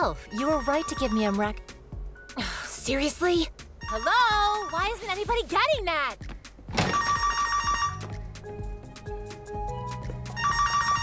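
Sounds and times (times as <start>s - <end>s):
soft background music: 0.0s - 11.0s
telephone ringing: 6.8s - 8.1s, 10.4s - 11.0s.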